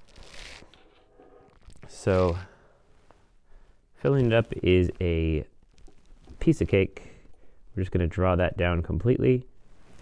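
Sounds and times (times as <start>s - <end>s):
soft rustle: 0.0s - 7.2s, 9.5s - 10.0s.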